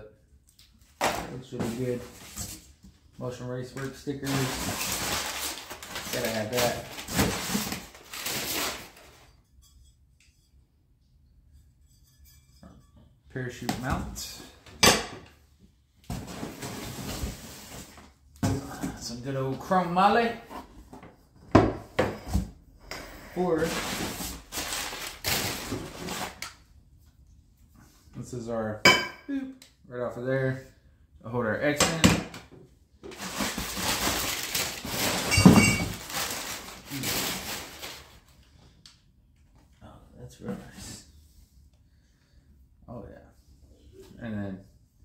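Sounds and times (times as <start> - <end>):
paper crinkling and rustling: 3.7 - 9.3, 23.6 - 26.4, 33.1 - 38.4.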